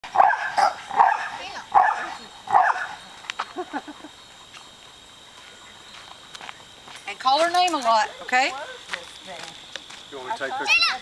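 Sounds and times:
dog barking: 0.1 - 3.0.

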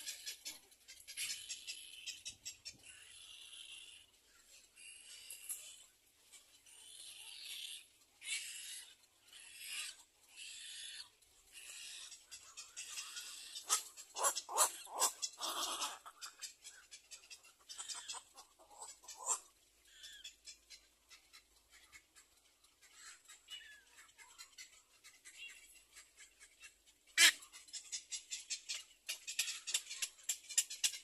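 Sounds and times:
cormorants raspy hissing calls: 2.8 - 4.1, 6.7 - 16.7, 17.7 - 20.1.

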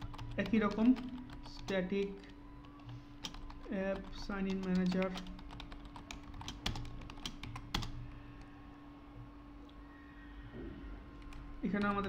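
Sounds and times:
computer keyboard typing: 0.0 - 8.2, 11.2 - 12.0.

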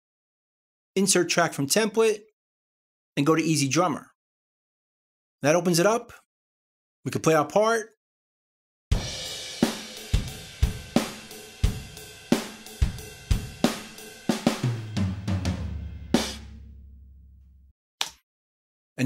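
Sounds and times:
drum kit cymbal pattern: 8.9 - 17.0
tom fill: 8.9 - 17.5
kick and snare drum hits: 12.4 - 16.7.

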